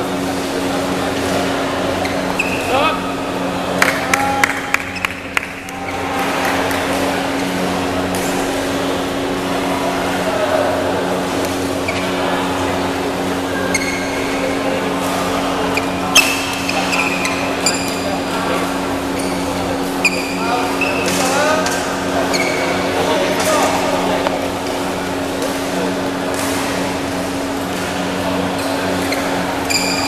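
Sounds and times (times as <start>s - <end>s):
indistinct voices: 0.0s - 30.0s
steady hum: 0.0s - 30.0s
shoes squeaking on court: 1.8s - 2.9s, 11.6s - 12.7s, 13.3s - 23.8s, 25.1s - 30.0s.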